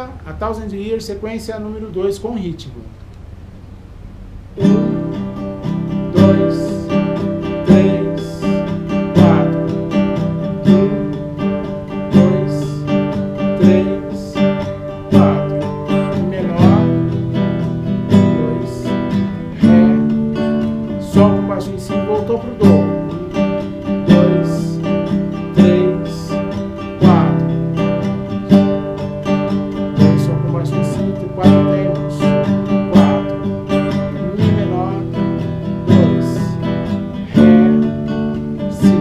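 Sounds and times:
classical guitar strumming: 0:04.5 - 0:39.0.

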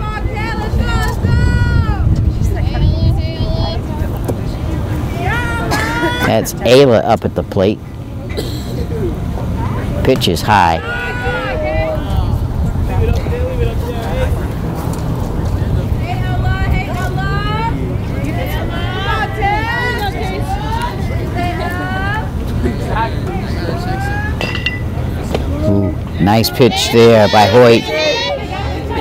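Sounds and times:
distant voices calling out: 0:07.4 - 0:29.0.

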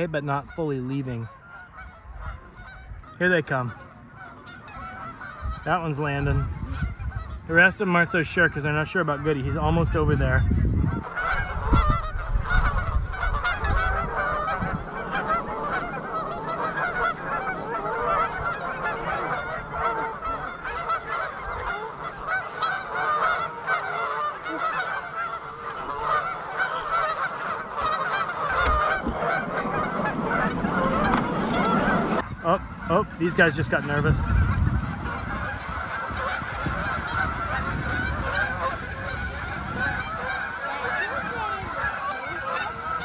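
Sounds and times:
geese honking: 0:00.0 - 0:43.0.

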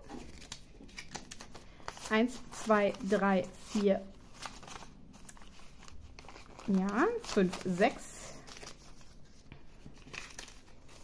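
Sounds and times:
banknotes rustling and crinkling: 0:00.0 - 0:11.0.

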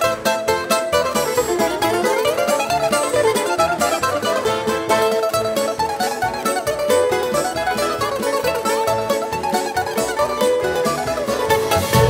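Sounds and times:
bouzouki melody: 0:00.0 - 0:12.0
double bass: 0:00.0 - 0:12.0
strummed acoustic guitar: 0:00.0 - 0:12.0.

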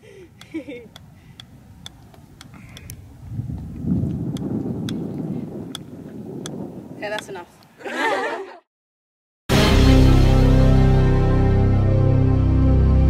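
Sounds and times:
golf ball bouncing on club: 0:00.4 - 0:03.0, 0:04.3 - 0:07.4.

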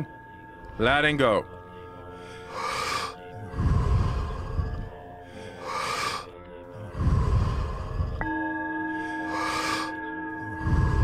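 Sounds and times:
soft background music: 0:00.0 - 0:11.0
hissing breath in: 0:02.2 - 0:08.3, 0:08.9 - 0:11.0
rushing breath out: 0:02.2 - 0:08.3, 0:08.9 - 0:11.0.

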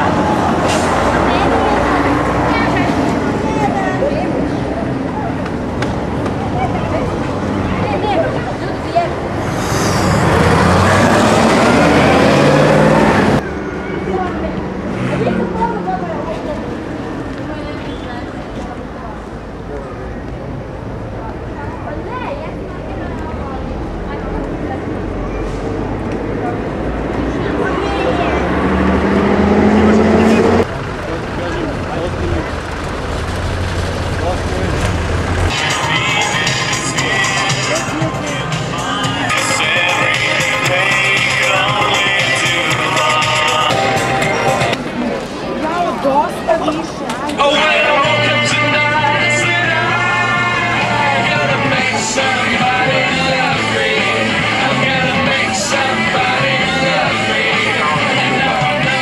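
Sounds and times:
people talking: 0:00.0 - 0:28.8, 0:29.6 - 0:33.0, 0:33.9 - 0:59.0
bus engine humming: 0:00.0 - 0:59.0
quiet street sound: 0:00.0 - 0:59.0
road noise: 0:00.0 - 0:59.0
traffic rumble: 0:00.0 - 0:59.0
music playing: 0:35.5 - 0:44.8, 0:47.4 - 0:59.0.

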